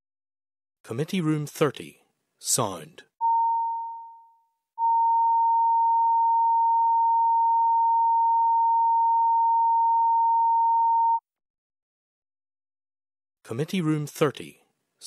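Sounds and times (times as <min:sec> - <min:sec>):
steady test tone: 0:03.2 - 0:11.2.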